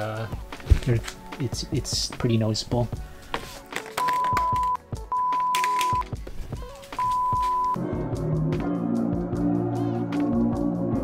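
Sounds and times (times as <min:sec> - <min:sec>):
background music: 0:00.0 - 0:11.0
censor bleeps: 0:04.1 - 0:06.0, 0:07.0 - 0:07.8.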